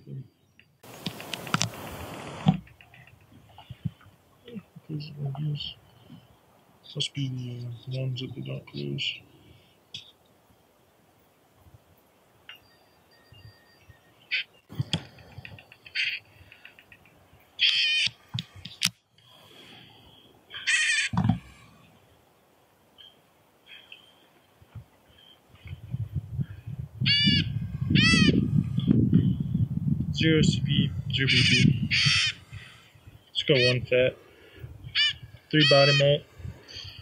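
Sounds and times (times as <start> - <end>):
bird giving nasal calls: 14.3 - 17.0, 17.6 - 21.8, 27.0 - 29.4, 30.9 - 37.0.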